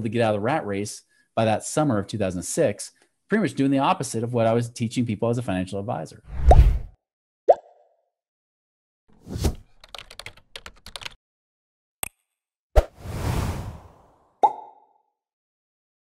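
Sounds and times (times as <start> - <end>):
keyboard typing clicks: 9.8 - 11.2
whoosh: 13.0 - 14.1.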